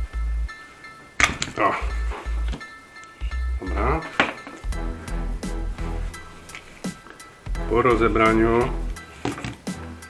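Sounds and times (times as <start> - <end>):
background music with beat: 0.0 - 10.0.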